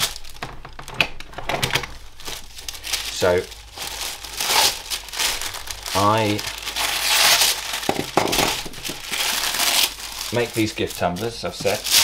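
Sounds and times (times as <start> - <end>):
tissue paper rustling and crinkling: 1.9 - 12.0.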